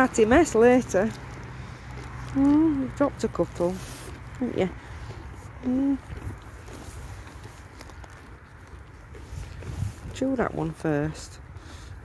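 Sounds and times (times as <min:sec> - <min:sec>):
foal chewing crunches: 0:00.0 - 0:12.0
steady low rumble: 0:00.0 - 0:12.0.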